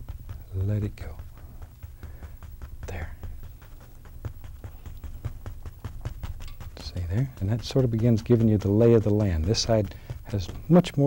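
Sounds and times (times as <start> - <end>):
paint brush tapping on canvas: 0.0 - 11.0
soft breath: 1.3 - 5.0, 9.9 - 10.3.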